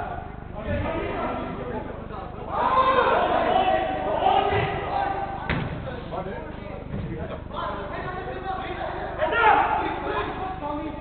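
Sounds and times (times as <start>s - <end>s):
players' voices echoing: 0.0s - 11.0s.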